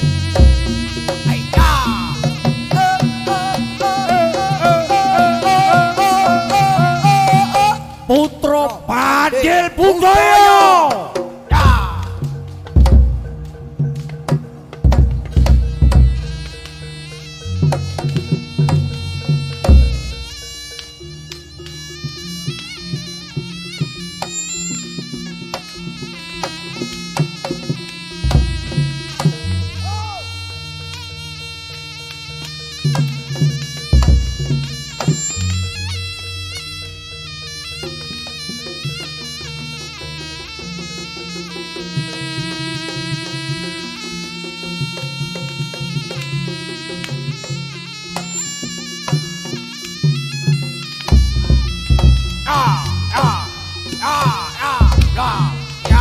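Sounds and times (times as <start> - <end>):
drums and gongs: 0.0 - 56.0
reed pipe melody: 0.0 - 56.0.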